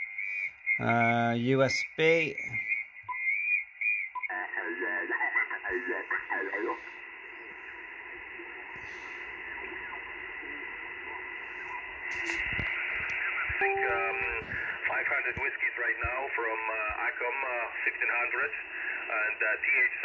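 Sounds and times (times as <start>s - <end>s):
radio band hiss: 0.0s - 3.1s, 4.2s - 20.0s
voice over radio: 0.8s - 2.7s, 4.3s - 7.0s, 12.3s - 20.0s.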